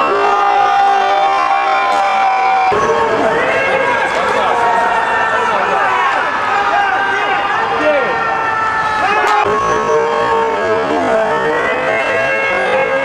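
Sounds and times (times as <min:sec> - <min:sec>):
crowd shouting and calling out: 0:00.0 - 0:13.0.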